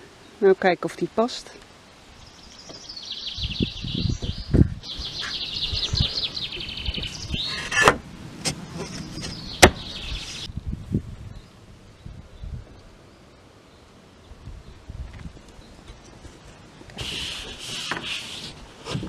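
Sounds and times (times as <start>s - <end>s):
bird singing high trills: 2.2s - 7.8s, 8.8s - 10.5s
plywood bumping on rafters: 7.7s - 10.0s.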